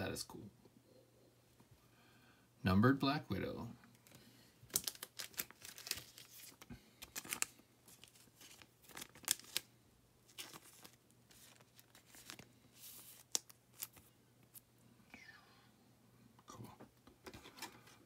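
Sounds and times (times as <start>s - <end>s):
trading cards handled: 3.9s - 9.7s, 10.3s - 14.6s.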